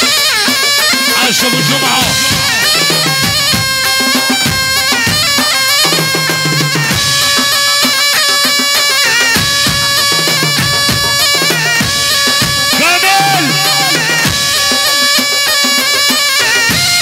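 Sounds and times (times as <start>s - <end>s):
shrill reed pipe melody: 0.0s - 17.0s
bass drums booming: 1.7s - 7.6s, 9.3s - 16.0s.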